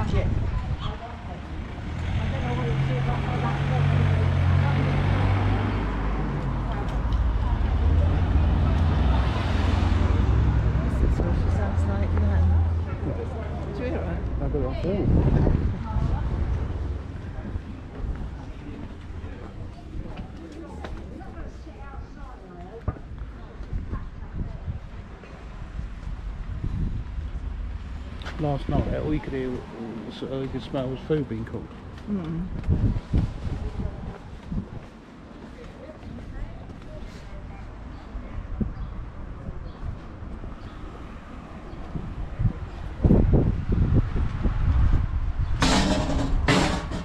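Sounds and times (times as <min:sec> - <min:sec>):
quiet street background: 0:00.0 - 0:47.0.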